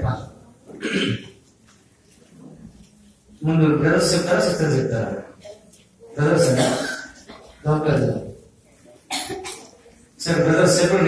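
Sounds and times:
man coughing: 0:00.8 - 0:01.3, 0:06.4 - 0:07.4.

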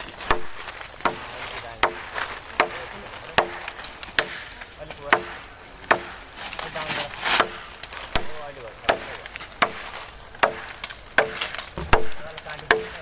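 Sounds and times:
blade chopping wooden branch: 0:00.2 - 0:13.0.

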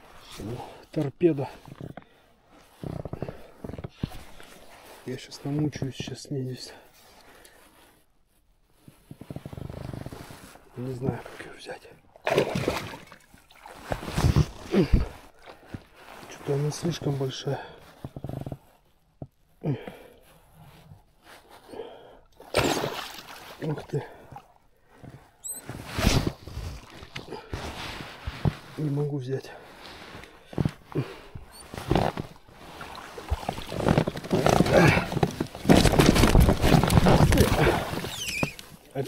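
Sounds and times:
waterproof clothing rustling: 0:00.0 - 0:39.0
fish thrashing and splashing: 0:12.3 - 0:14.0, 0:22.5 - 0:23.5, 0:32.8 - 0:38.7.

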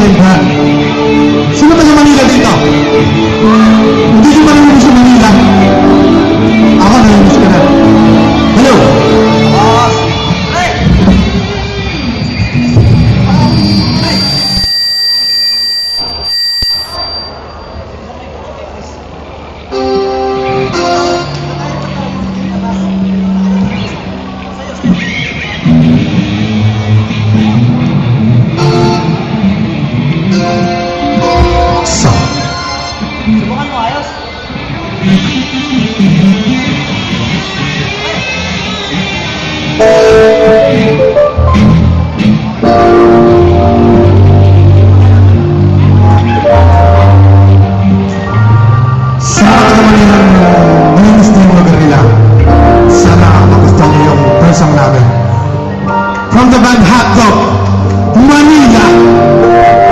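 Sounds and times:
live band music over pa: 0:00.0 - 0:15.7, 0:19.7 - 0:24.0, 0:24.8 - 0:59.9
thin high tone: 0:12.2 - 0:18.0, 0:30.3 - 0:33.4.

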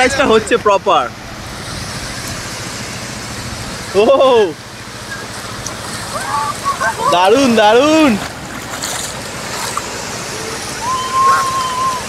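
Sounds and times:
surf washing over sand: 0:00.0 - 0:12.0
feet splashing through water: 0:04.9 - 0:12.0.

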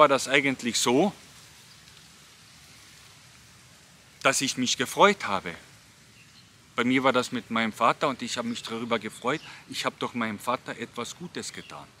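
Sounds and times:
outdoor ambience hiss: 0:00.0 - 0:12.0.

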